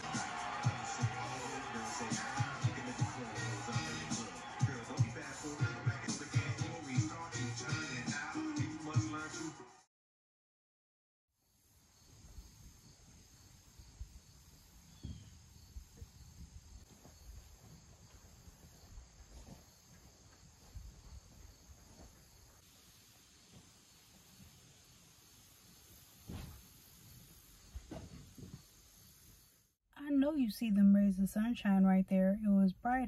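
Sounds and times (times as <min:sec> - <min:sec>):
soft bumps: 0:26.2 - 0:26.7, 0:27.7 - 0:28.7.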